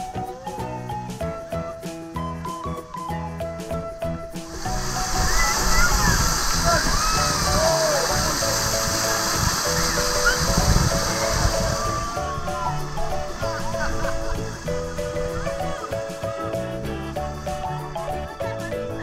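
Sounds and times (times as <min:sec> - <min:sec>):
background music: 0:00.0 - 0:19.0
water splashing: 0:04.4 - 0:16.5
children calling and shrieking: 0:04.5 - 0:19.0.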